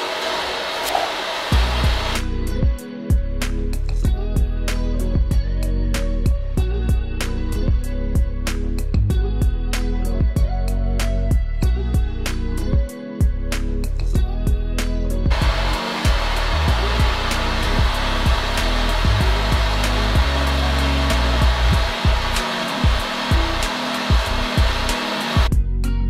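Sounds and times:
heating tool hissing: 0:00.0 - 0:02.3, 0:15.3 - 0:25.5.

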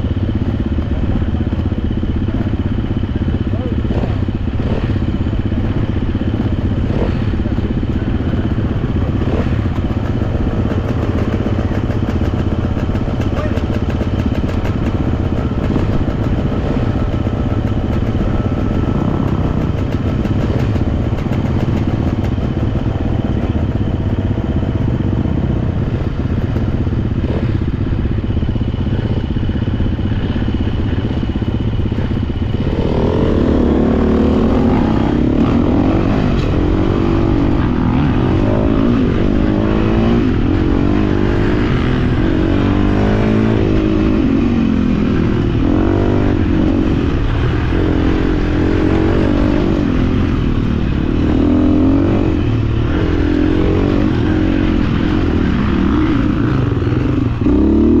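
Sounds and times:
dirt bike engine idling and revving: 0:00.0 - 0:58.0.

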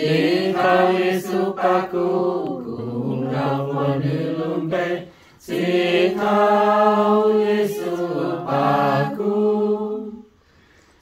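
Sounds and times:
group singing a hymn unaccompanied: 0:00.0 - 0:10.6.

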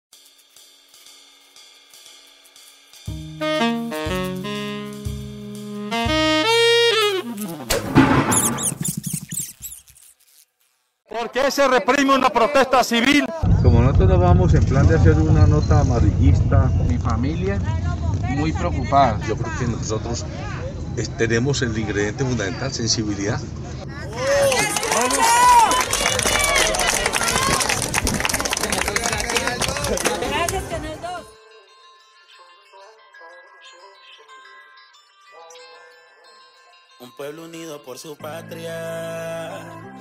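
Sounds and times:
rat squeaks: 0:08.3 - 0:10.5
busy street noise: 0:15.2 - 0:31.8
voices: 0:15.4 - 0:34.5.

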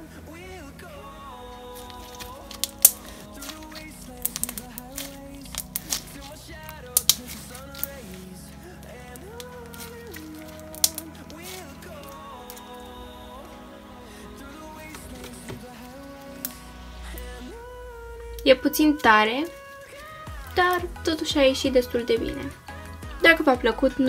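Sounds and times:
background music: 0:00.0 - 0:24.0.

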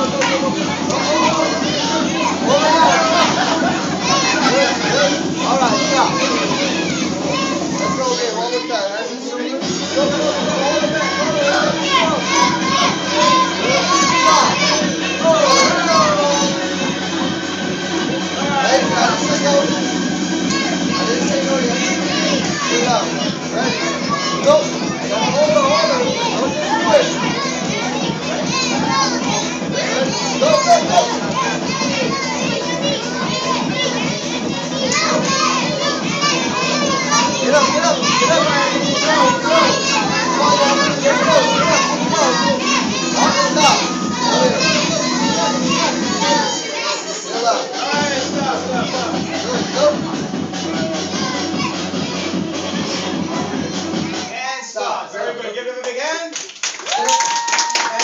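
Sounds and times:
children chattering and calling out: 0:00.0 - 0:54.4
background music: 0:00.0 - 0:55.0.

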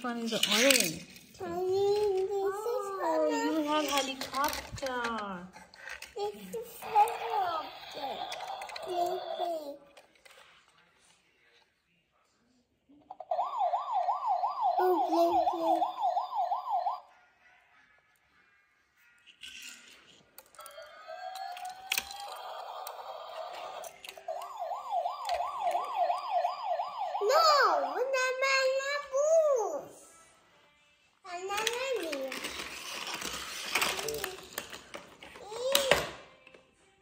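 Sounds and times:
toy click: 0:00.4 - 0:01.0
electronic toy sounds: 0:06.1 - 0:09.6, 0:13.1 - 0:17.1, 0:19.2 - 0:28.2
electronic wailing siren: 0:13.2 - 0:17.1, 0:20.8 - 0:28.2.

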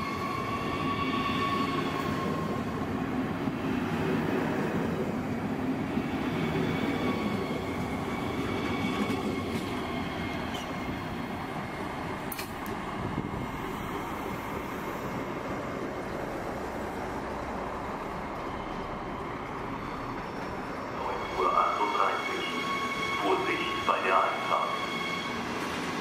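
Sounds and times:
train rail noise: 0:00.0 - 0:26.0
voices: 0:21.0 - 0:22.6, 0:23.2 - 0:24.9.

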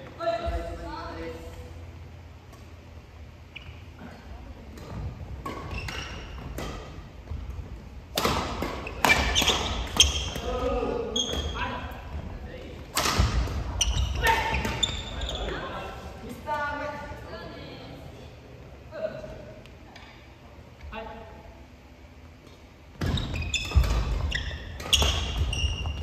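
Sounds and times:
rackets striking shuttlecocks: 0:08.1 - 0:10.5, 0:12.9 - 0:13.6.

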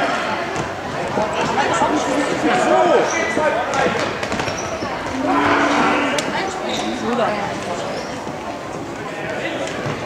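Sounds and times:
people shouting in a hall: 0:05.1 - 0:06.5.

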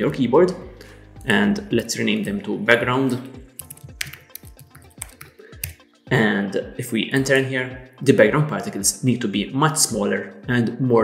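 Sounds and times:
soft background music: 0:00.0 - 0:11.0
keyboard typing: 0:03.6 - 0:05.8.

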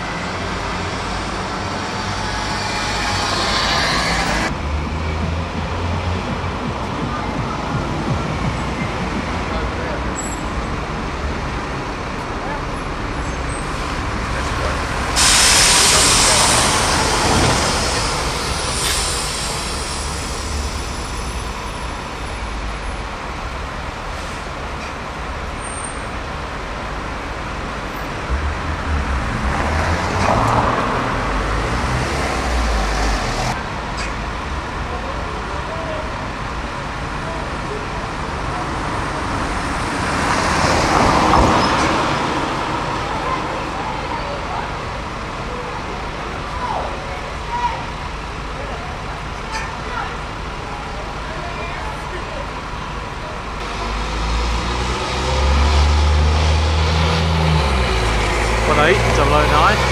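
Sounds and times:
diesel bus idling: 0:00.0 - 0:04.6, 0:05.5 - 0:28.9, 0:55.0 - 0:59.9
street traffic: 0:00.0 - 0:59.9
air brake hiss: 0:15.2 - 0:21.6.

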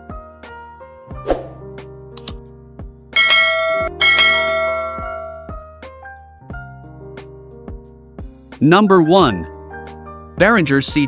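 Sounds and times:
background music with steady beat: 0:00.0 - 0:11.0
bright bell chimes: 0:03.2 - 0:05.5.

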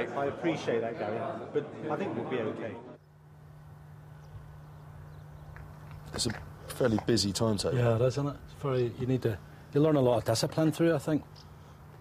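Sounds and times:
steady low hum: 0:02.9 - 0:12.0.

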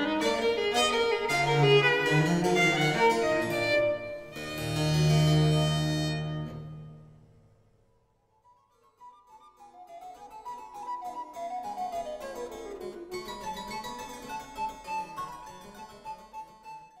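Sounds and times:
harpsichord playing baroque music: 0:00.0 - 0:06.4, 0:09.4 - 0:17.0.

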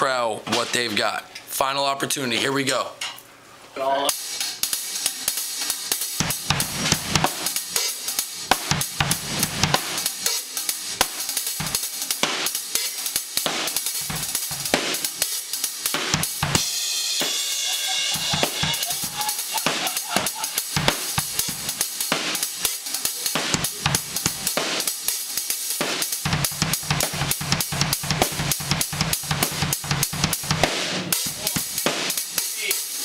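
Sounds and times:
drum kit solo: 0:04.1 - 0:33.0.

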